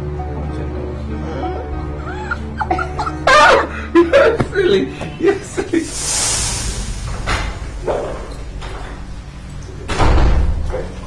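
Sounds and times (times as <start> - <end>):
door slamming shut: 9.8 - 10.9.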